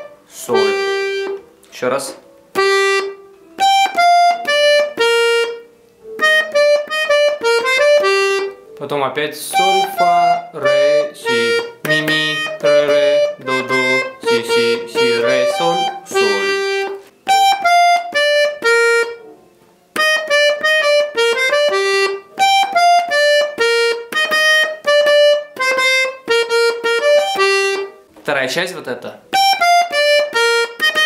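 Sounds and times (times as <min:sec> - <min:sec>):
button accordion melody: 0:00.0 - 0:08.8, 0:09.4 - 0:19.3, 0:19.9 - 0:28.1, 0:29.3 - 0:31.0.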